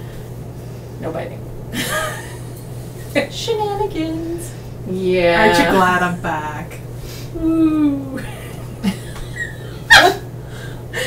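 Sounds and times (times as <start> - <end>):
woman squealing: 9.9 - 10.2.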